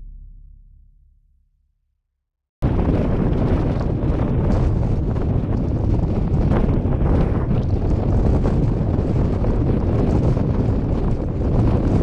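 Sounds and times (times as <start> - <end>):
wind buffeting microphone: 2.6 - 12.0.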